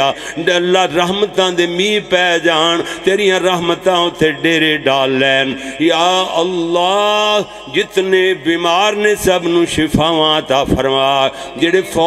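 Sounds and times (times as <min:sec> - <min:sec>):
man chanting into microphone: 0:00.0 - 0:12.0.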